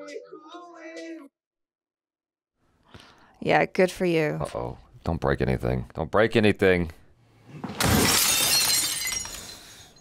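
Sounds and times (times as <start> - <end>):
glass shattering: 7.7 - 10.0
tinkling glass shards: 8.0 - 10.0.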